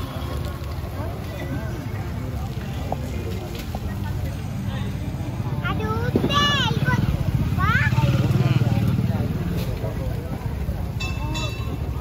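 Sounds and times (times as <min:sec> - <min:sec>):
motorcycle engines passing: 0:00.0 - 0:12.0.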